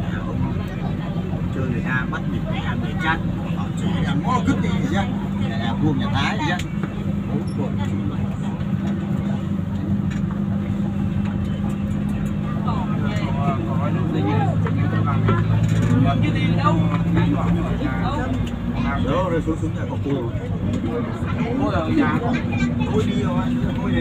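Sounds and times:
indistinct voices talking: 0:00.0 - 0:24.0
vehicle engine and road drone: 0:00.0 - 0:24.0.

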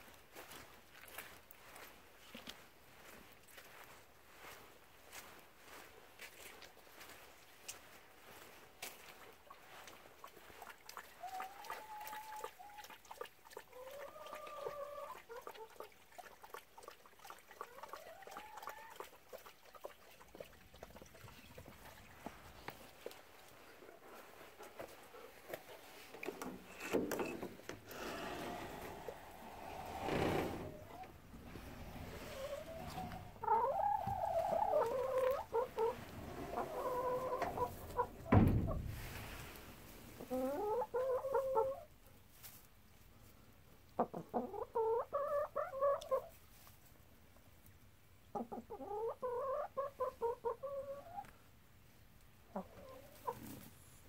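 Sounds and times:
hens clucking: 0:13.6 - 0:15.9, 0:25.6 - 0:38.7, 0:40.2 - 0:41.9, 0:43.9 - 0:46.4, 0:48.3 - 0:51.3, 0:52.5 - 0:53.7
rustling: 0:22.2 - 0:33.4, 0:35.2 - 0:40.3.

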